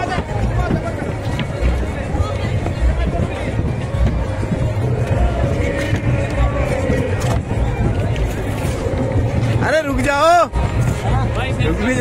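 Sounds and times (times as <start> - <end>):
crowd chatter: 0.0 - 12.0
music playing: 0.0 - 12.0.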